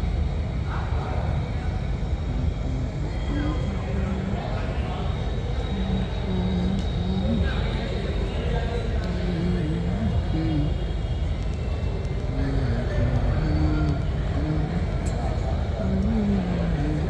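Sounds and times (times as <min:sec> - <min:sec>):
steady low rumble: 0:00.0 - 0:17.0
man talking in background: 0:00.7 - 0:11.2, 0:12.2 - 0:17.0.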